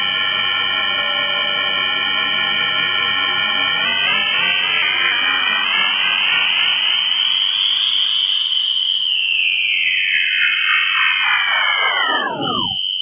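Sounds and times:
gliding electronic tones: 11.0 - 12.8
high buzzing tone: 11.2 - 13.0.

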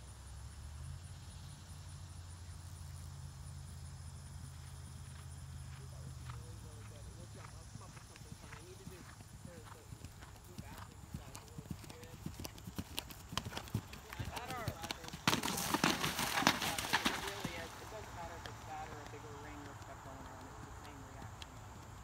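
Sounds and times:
horse hoofbeats on turf: 4.5 - 22.0.

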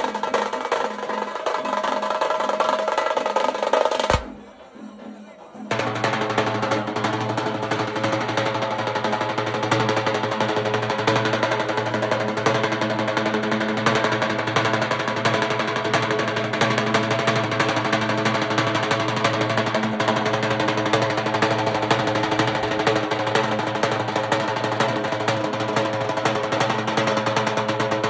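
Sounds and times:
fast dense beat: 0.0 - 5.1, 5.7 - 28.0.

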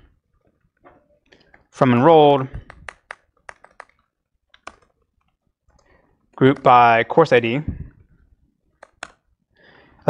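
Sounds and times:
computer keyboard clicks: 2.6 - 5.9, 8.8 - 9.2.

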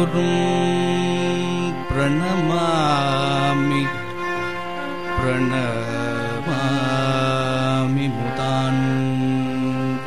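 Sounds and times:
man singing devotional verse: 0.0 - 4.4, 5.0 - 10.0
steady drone: 0.0 - 10.0.

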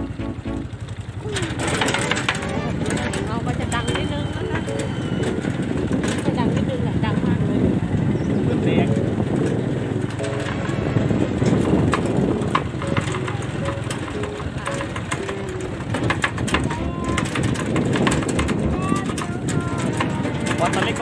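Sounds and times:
knocks and rattles: 0.0 - 21.0
road noise: 0.0 - 21.0
vehicle engine running: 0.0 - 21.0.

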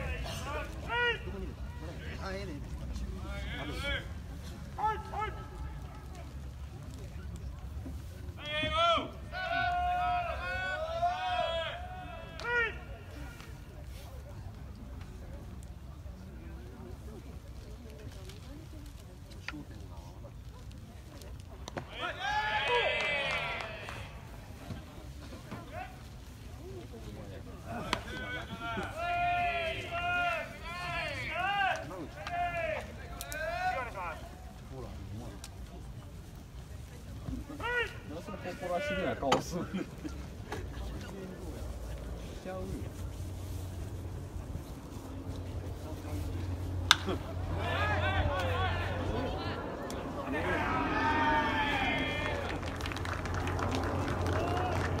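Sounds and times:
low background rumble: 40.0 - 55.0.

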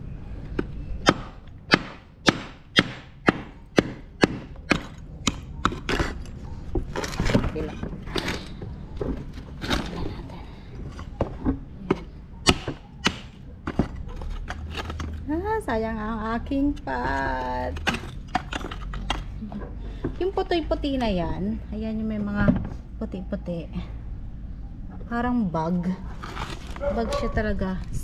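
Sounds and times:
pot shards cracking and scraping: 4.6 - 10.3, 12.5 - 15.4, 16.4 - 19.4.

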